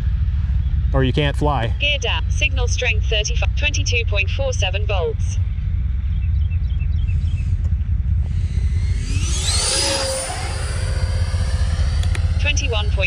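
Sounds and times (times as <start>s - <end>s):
steady low rumble: 0.0s - 13.0s
model jet fan whining: 7.2s - 13.0s.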